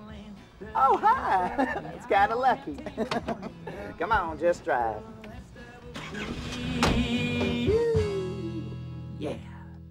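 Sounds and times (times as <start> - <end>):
car driving off: 5.9 - 7.8.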